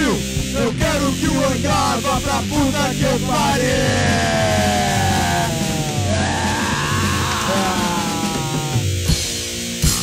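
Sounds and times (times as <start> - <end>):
hardcore punk band playing: 0.0 - 10.0.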